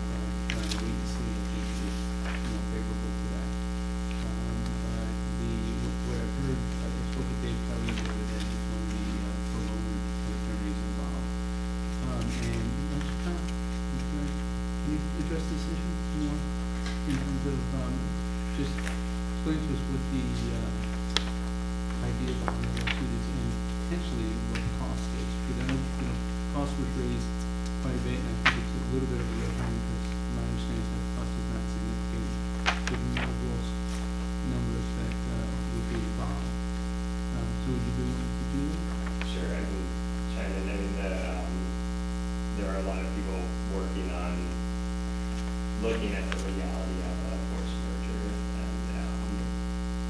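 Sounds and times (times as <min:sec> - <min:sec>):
faint low talk: 0:00.0 - 0:20.9, 0:21.9 - 0:36.6, 0:37.3 - 0:41.8, 0:42.5 - 0:44.7, 0:45.7 - 0:49.6
electrical mains hum: 0:00.0 - 0:50.0.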